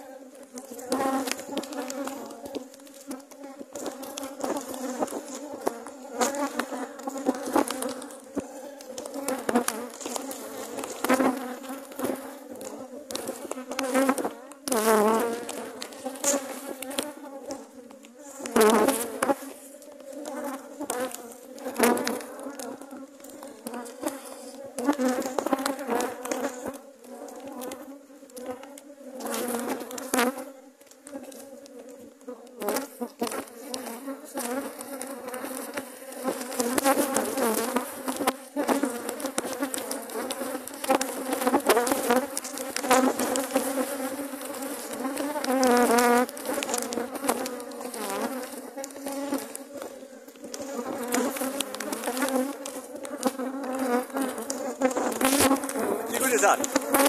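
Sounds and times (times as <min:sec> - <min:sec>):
honeybees buzzing: 0:00.0 - 0:57.0.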